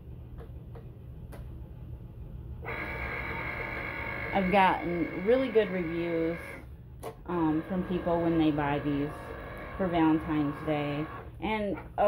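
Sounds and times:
high-pitched motor whir: 2.7s - 6.6s.

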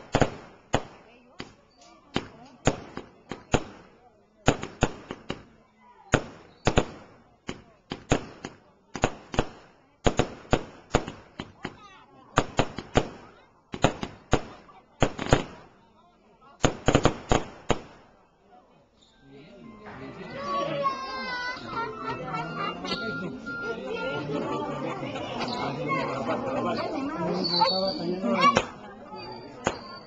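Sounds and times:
fireworks bursting with sharp bangs: 0.0s - 15.9s, 16.5s - 18.3s, 28.4s - 28.9s, 29.5s - 30.0s.

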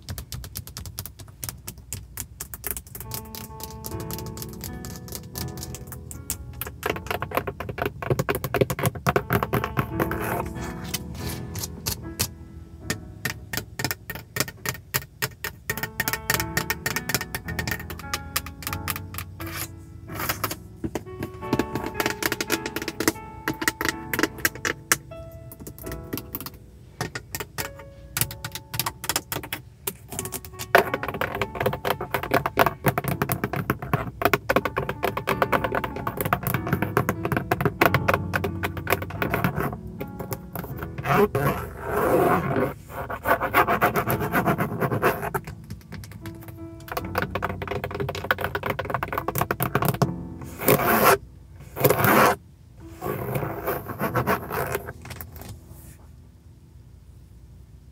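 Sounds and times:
fingernails tapping on plastic: 0.0s - 12.3s, 12.9s - 51.2s
soft spa music: 2.4s - 57.9s.

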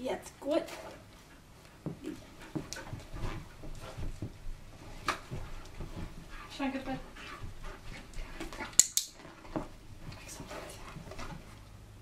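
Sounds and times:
soft footfalls on carpet: 0.7s - 8.6s.

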